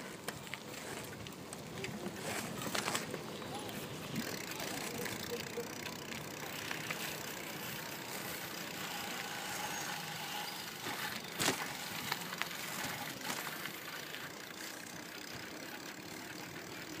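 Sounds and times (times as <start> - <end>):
bicycle tyres rolling: 0.0 - 17.0.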